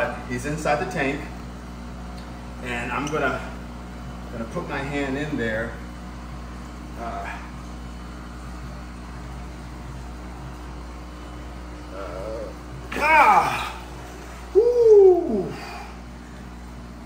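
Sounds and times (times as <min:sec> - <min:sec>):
steady low hum: 0:00.0 - 0:17.0
man hooting ooh: 0:11.9 - 0:13.9, 0:14.5 - 0:15.9
man crying out: 0:12.0 - 0:13.9, 0:14.5 - 0:15.8.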